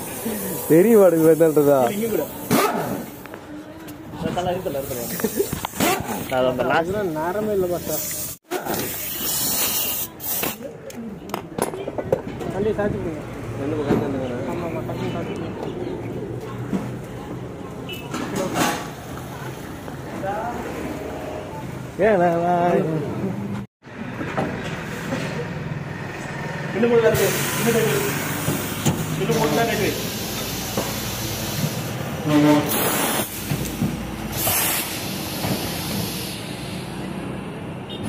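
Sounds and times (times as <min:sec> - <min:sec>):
impact wrench air hiss: 0:00.0 - 0:03.3, 0:04.7 - 0:06.2, 0:07.8 - 0:10.7, 0:27.2 - 0:32.1, 0:32.7 - 0:37.0
voices: 0:00.0 - 0:23.7
workshop noise: 0:00.0 - 0:38.0.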